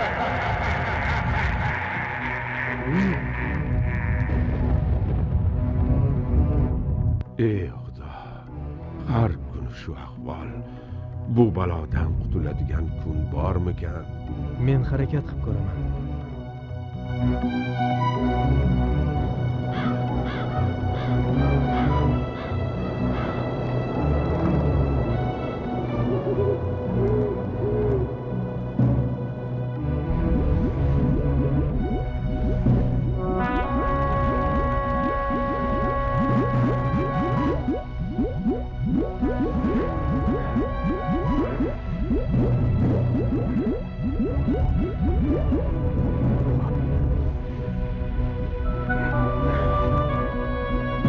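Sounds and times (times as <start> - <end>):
low rumble: 0.0 - 7.4, 23.0 - 50.8
background music: 0.0 - 51.0
crow cawing: 0.8 - 4.5, 19.7 - 21.3
cartoon bubbling bloops: 30.2 - 46.9.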